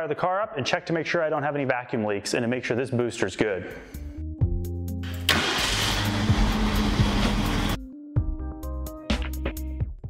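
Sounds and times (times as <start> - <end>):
background music: 0.5 - 10.0
car engine starting and running: 5.0 - 7.8.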